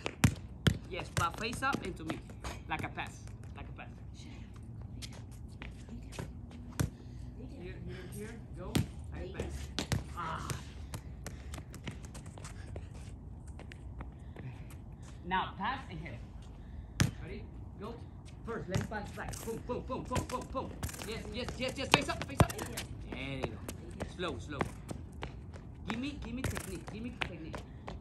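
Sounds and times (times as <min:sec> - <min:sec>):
ball bouncing on concrete: 0:00.0 - 0:03.7, 0:04.8 - 0:07.0, 0:08.6 - 0:12.5, 0:17.0 - 0:17.2, 0:18.6 - 0:28.0.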